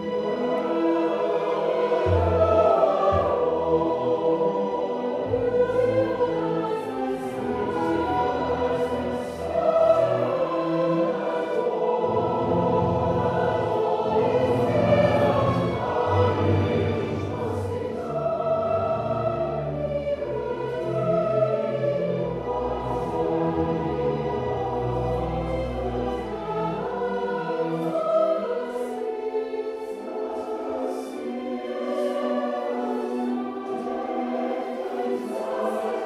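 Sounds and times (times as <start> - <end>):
choir singing: 0.0 - 36.0.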